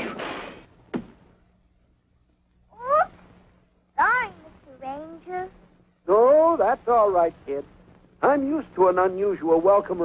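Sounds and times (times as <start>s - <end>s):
faint steady hum: 0.0s - 10.0s
short knock: 0.9s - 1.2s.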